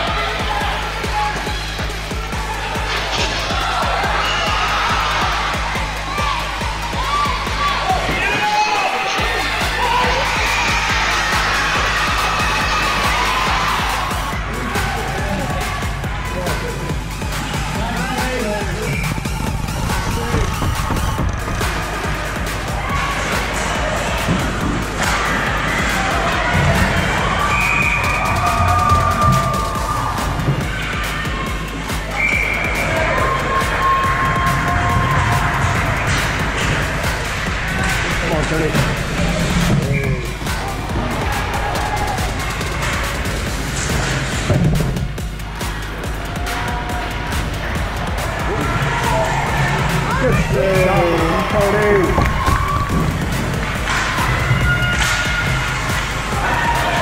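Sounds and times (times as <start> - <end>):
background music with steady beat: 0.0 - 57.0.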